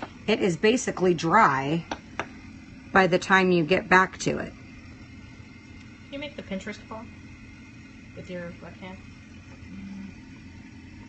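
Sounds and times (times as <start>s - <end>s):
short low hum: 0.1s - 11.0s.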